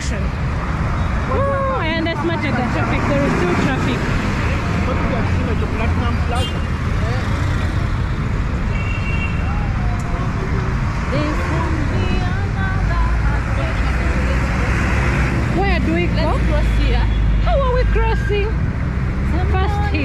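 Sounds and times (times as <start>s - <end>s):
buses cars and motorbikes passing: 0.0s - 20.0s
deep engine rumble of minibus: 0.0s - 20.0s
people's voices: 1.2s - 8.7s, 9.3s - 20.0s.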